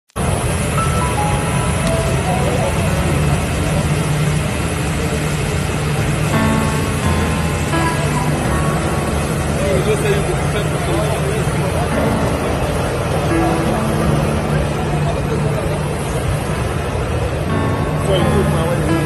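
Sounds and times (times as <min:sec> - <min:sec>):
engine hum and hiss: 0:00.2 - 0:19.0
faint voices: 0:00.2 - 0:19.0.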